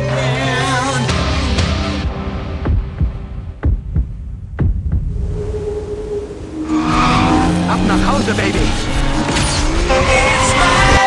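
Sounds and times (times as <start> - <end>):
deep rumble: 2.6 - 9.2
heavy double thumps: 2.7 - 5.4
car engine: 5.1 - 11.0.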